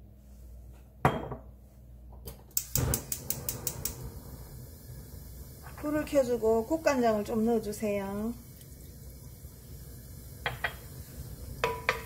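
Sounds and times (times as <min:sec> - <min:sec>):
gas stove igniter clicking: 0:02.3 - 0:04.4.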